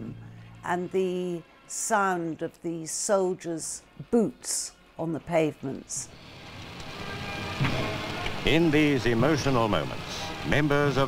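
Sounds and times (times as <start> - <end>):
faint music: 0.0 - 11.0
steady hiss: 6.1 - 11.0.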